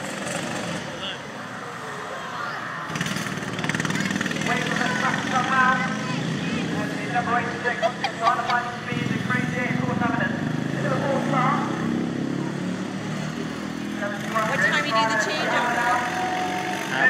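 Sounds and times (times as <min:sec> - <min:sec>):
lawn mower engine running: 0:02.9 - 0:10.6
people talking: 0:04.0 - 0:11.7, 0:14.0 - 0:16.1.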